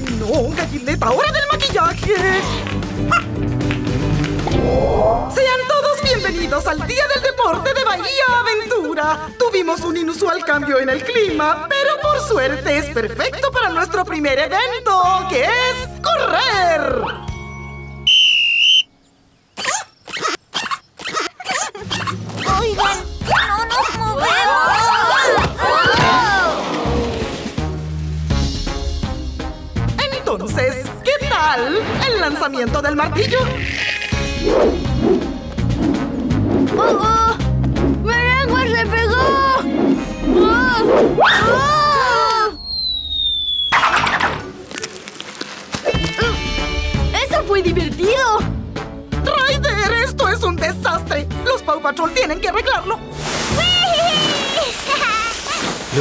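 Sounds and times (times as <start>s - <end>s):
background music: 0.0s - 19.4s, 21.8s - 55.2s
referee's whistle blast: 18.0s - 18.9s
descending whistle: 18.0s - 19.0s, 42.5s - 44.0s.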